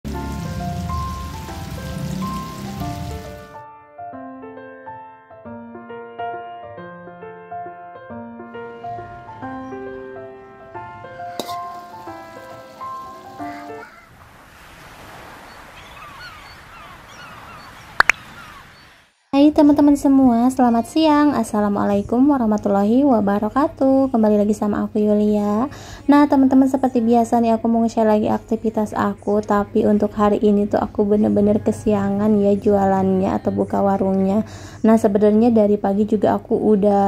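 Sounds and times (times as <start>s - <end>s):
keyboard background music: 0.0s - 14.0s, 26.4s - 37.0s
food deep-frying in oil: 0.1s - 3.6s, 11.3s - 13.8s
steady rushing hiss: 0.1s - 3.6s, 11.2s - 15.8s
small birds chirping: 9.3s - 10.7s, 12.0s - 14.2s, 15.3s - 19.1s.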